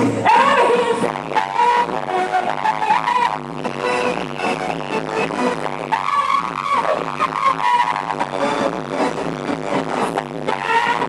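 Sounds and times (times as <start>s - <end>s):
woman singing into a microphone: 0.0s - 3.4s
electronic backing track: 0.0s - 11.0s.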